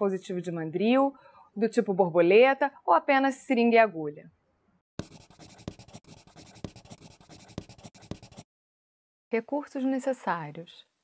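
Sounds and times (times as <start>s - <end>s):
pen scratching on paper: 5.0s - 8.5s.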